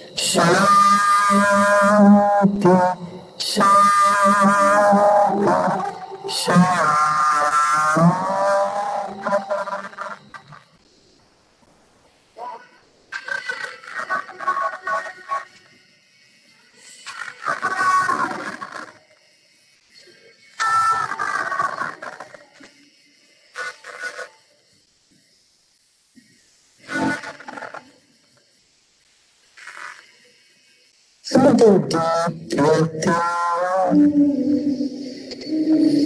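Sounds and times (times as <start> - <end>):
calm voice speaking slowly: 0.0 - 10.4, 12.4 - 15.7, 31.2 - 36.0.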